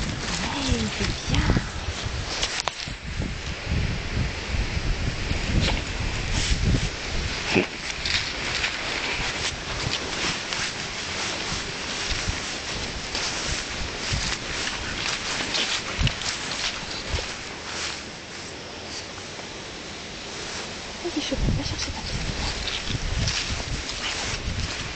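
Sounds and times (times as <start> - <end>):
short rustles: 0.0 - 3.0, 5.5 - 19.2, 20.3 - 24.9.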